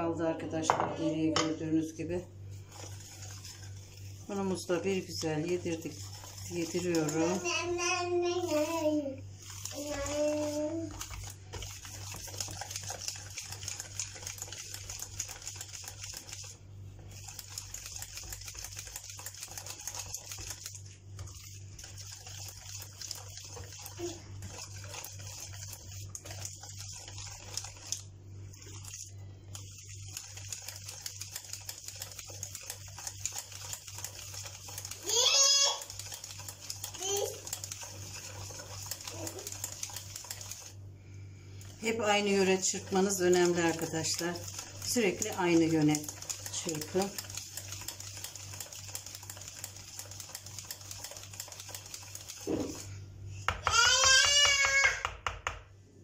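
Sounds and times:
whisk beating batter in bowl: 0.0s - 55.6s.

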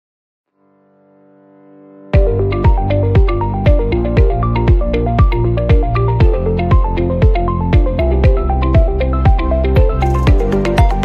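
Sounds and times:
electronic music: 2.2s - 11.0s.

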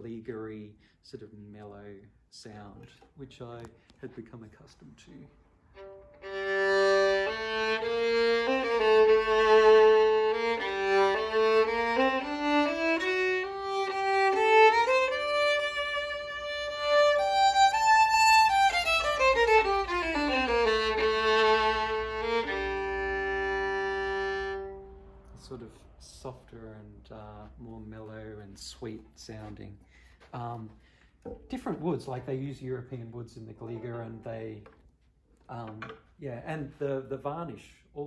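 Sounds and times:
solo violin melody: 5.6s - 26.2s.

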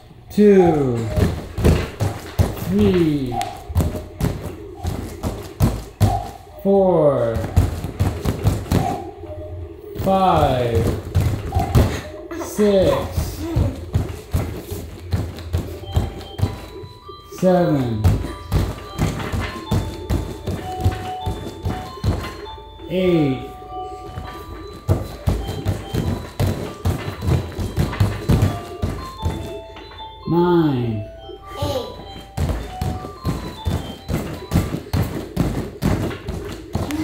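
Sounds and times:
background music: 0.0s - 37.0s
feet thudding on foam box: 3.6s - 6.4s, 13.2s - 16.8s, 17.9s - 22.5s, 24.6s - 29.5s.

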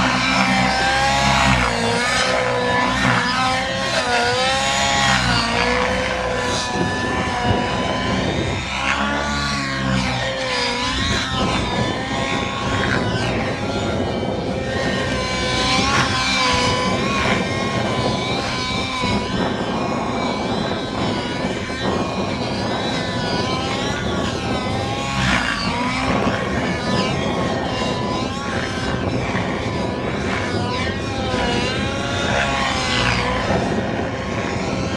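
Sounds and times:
model aircraft engine buzzing: 0.0s - 34.9s.

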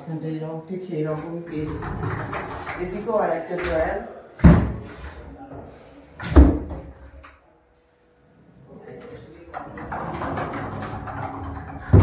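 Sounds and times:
sliding door rolling on track: 1.5s - 3.0s, 9.4s - 12.0s.

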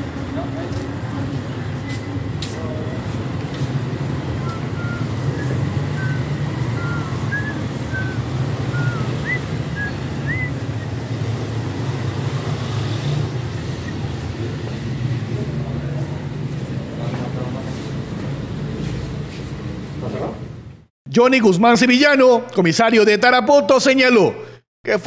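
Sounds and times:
indistinct voices: 0.0s - 12.1s
vehicle engines rumbling: 0.0s - 20.9s.

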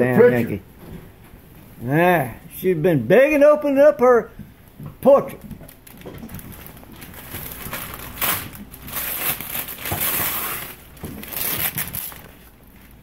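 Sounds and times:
wrapping paper crinkling: 5.6s - 13.0s.

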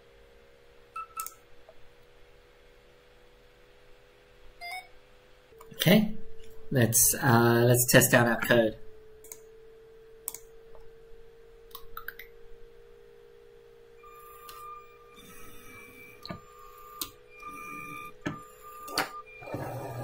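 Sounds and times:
faint steady hum: 0.0s - 20.0s
small clicks: 1.1s - 1.4s, 10.2s - 10.5s
robot motors whirring: 14.2s - 20.0s.

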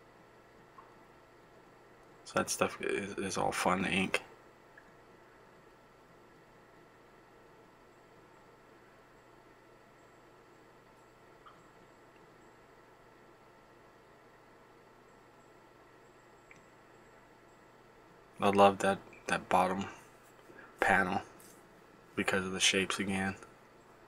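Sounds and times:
tiny ticks: 16.4s - 16.8s.

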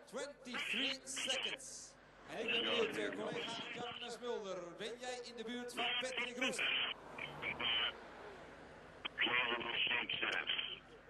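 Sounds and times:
man talking over radio: 0.5s - 1.7s, 2.3s - 4.2s, 5.7s - 8.0s, 9.1s - 10.8s.

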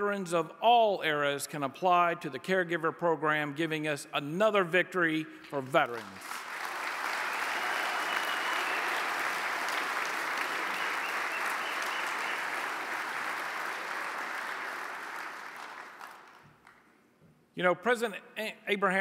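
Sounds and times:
audience applauding and cheering: 6.0s - 16.8s.

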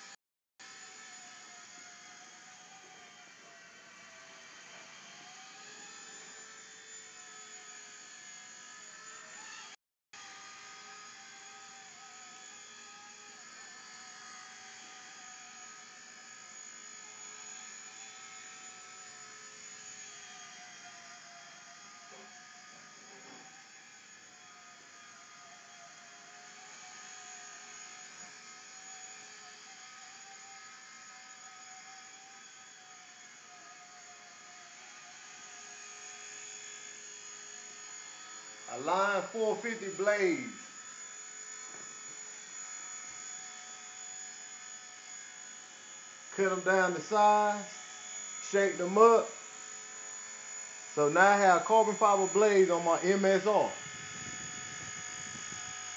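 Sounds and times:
toy helicopter rotor whirring: 0.6s - 55.9s.

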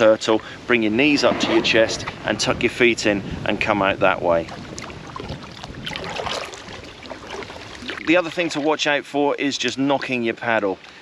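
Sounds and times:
water splashing against raft hull: 3.6s - 9.2s.

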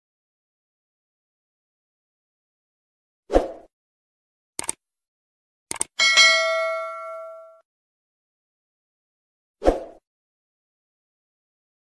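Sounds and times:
mouse clicks: 4.6s - 4.8s, 5.7s - 5.9s
notification bell ding: 6.0s - 7.6s.

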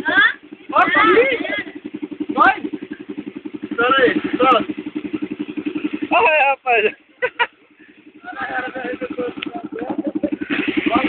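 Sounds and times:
dirt bike engine puttering: 0.0s - 11.0s
voices calling out: 0.0s - 11.0s.

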